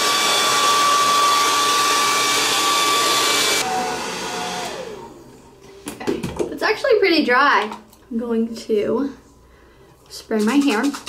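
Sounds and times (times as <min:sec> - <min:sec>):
hair dryer blowing: 0:00.0 - 0:05.4.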